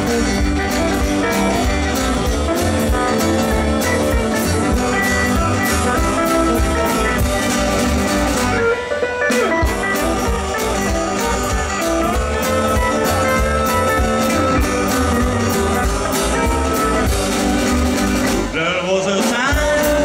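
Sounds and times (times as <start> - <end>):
drum kit steady beat: 0.0 - 20.0
guitar: 0.0 - 20.0
upright double bass: 0.0 - 20.0.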